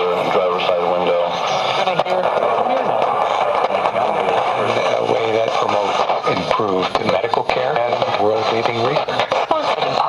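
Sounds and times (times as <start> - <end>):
radio static hiss: 0.0 - 10.0
voice speaking over radio: 0.0 - 10.0.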